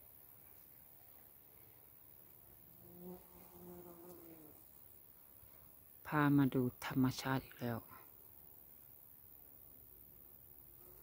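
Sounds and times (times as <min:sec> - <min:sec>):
bee buzzing: 0:02.5 - 0:04.8.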